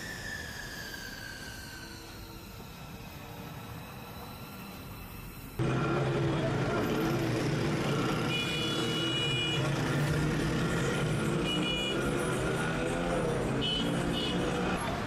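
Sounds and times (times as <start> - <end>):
vehicle engines running: 5.6 - 15.0.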